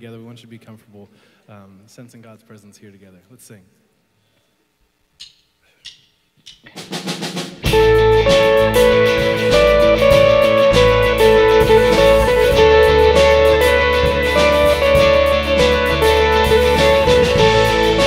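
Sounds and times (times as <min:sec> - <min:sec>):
worship band with guitars and drums: 0:06.6 - 0:18.0.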